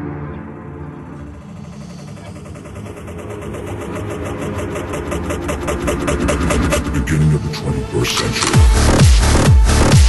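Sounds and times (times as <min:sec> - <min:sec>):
low rumble: 0:00.5 - 0:07.9
fast even pulsing: 0:01.1 - 0:10.0.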